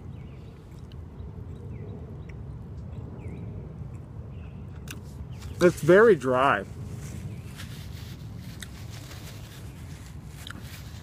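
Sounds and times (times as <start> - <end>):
man chewing: 0.4 - 3.1, 8.5 - 9.0, 10.1 - 11.0
paper napkin rustling: 6.8 - 11.0.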